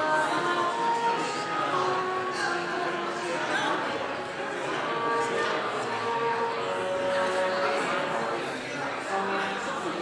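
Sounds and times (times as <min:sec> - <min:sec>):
instrumental accompaniment: 0:00.0 - 0:10.0.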